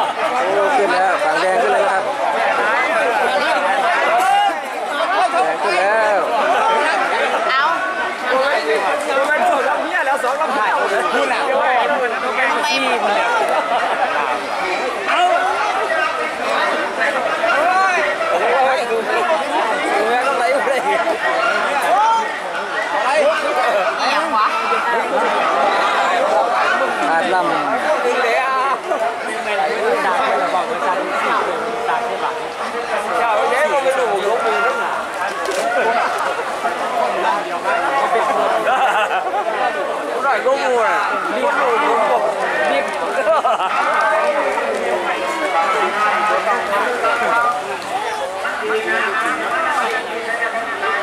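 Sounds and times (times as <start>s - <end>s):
crowd shouting and cheering: 0.0s - 51.0s.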